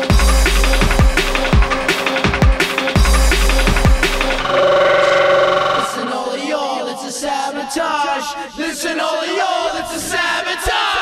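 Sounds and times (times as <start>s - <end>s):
drum and bass drums: 0.0s - 4.4s
sub-bass: 0.1s - 1.9s
held wavering tone: 4.4s - 7.4s.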